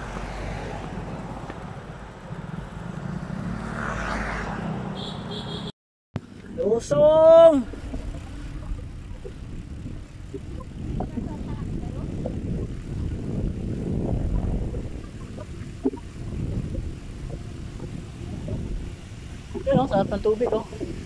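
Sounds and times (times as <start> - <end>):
bicycle tyres rolling on asphalt: 0.0 - 4.4, 6.2 - 21.0
wind buffeting microphone: 6.5 - 21.0.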